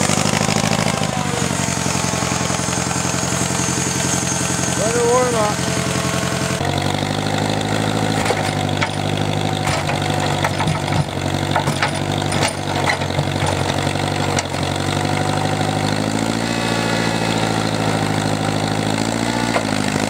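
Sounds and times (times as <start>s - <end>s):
tractor engine idling: 0.0s - 20.0s.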